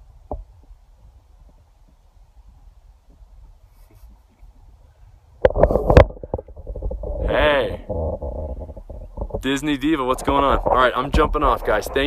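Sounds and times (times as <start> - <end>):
phone microphone handling noise: 5.4 - 12.0
low rumble: 5.6 - 12.0.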